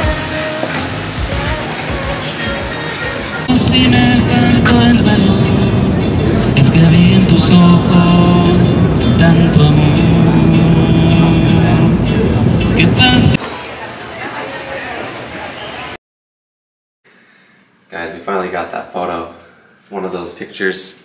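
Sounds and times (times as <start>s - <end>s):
man singing: 0.0s - 13.4s
strummed acoustic guitar: 0.0s - 13.4s
ferry engine low rumble: 3.4s - 13.4s.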